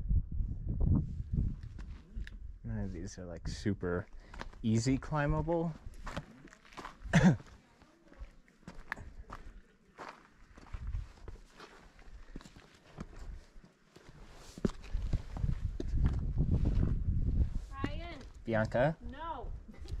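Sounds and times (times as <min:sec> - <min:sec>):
shoes scuffing on stone: 0:14.0 - 0:16.2.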